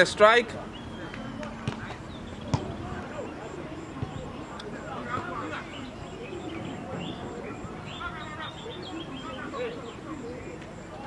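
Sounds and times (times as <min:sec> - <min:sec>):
distant players shouting: 0:00.4 - 0:11.0
football kick thump: 0:01.6 - 0:03.0, 0:03.9 - 0:04.2.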